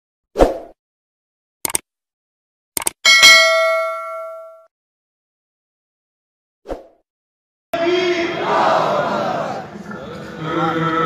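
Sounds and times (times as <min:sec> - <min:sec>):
quick clicks: 0:01.6 - 0:01.9, 0:02.8 - 0:03.0
bell ding: 0:03.0 - 0:04.7.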